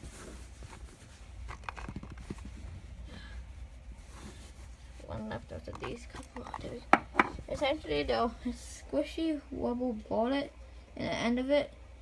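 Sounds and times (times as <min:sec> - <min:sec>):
rustling of bedding: 0:00.0 - 0:08.3.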